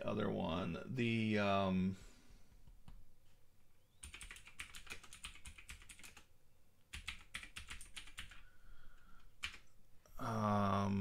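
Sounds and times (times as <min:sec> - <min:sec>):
faint keyboard typing: 0:04.0 - 0:06.3, 0:06.9 - 0:09.8.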